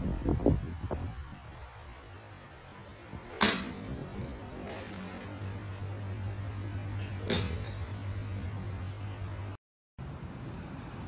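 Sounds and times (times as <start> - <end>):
low hum: 1.2 - 9.6
golf iron striking ball: 3.2 - 5.9, 7.0 - 8.0.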